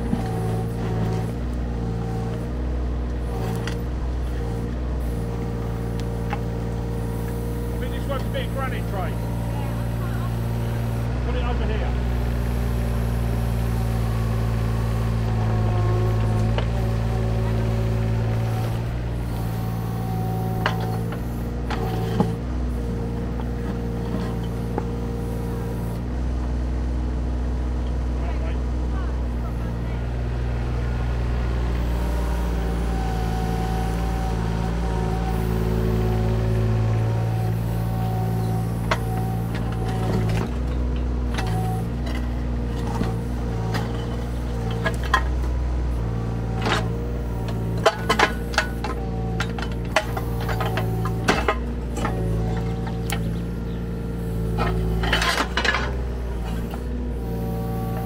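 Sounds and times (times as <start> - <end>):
diesel engine running: 0.0 - 58.0.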